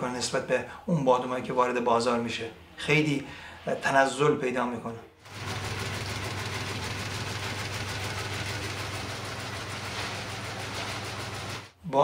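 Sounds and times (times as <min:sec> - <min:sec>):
machine motor hum: 0:05.2 - 0:11.7.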